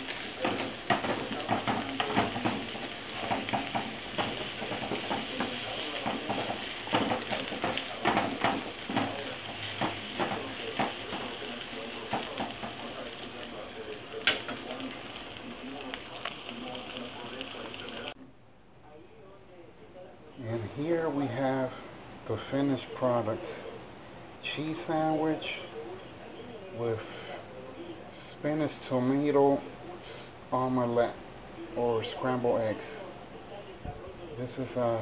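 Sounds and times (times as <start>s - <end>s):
food sizzling in a frying pan: 0.0s - 18.2s.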